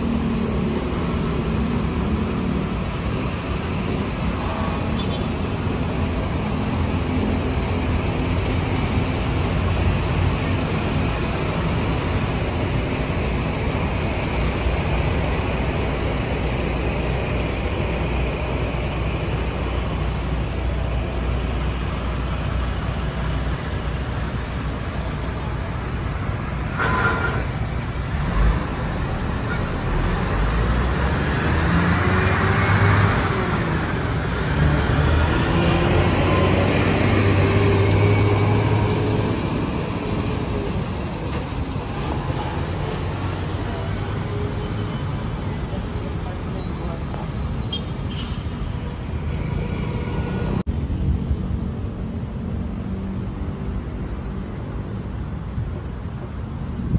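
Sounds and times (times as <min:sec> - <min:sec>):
heavy vehicles pulling away: 0:00.0 - 0:50.7
traffic rumbling past: 0:00.0 - 0:56.9.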